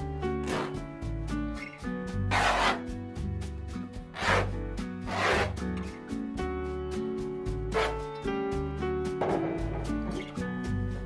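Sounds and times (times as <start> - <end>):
background music with steady beat: 0.0 - 11.0
canvas rubbing against wall: 0.3 - 0.8, 2.2 - 3.0, 4.0 - 5.8.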